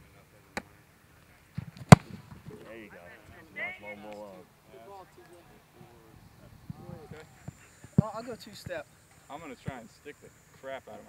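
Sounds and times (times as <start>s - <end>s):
foot thwacking football: 1.6s - 2.4s.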